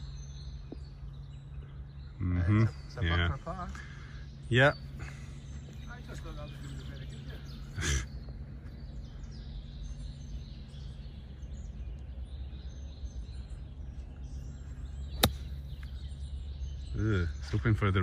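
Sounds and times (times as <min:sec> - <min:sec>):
faint birdsong: 0:00.0 - 0:18.0
golf club striking ball: 0:15.1 - 0:15.9.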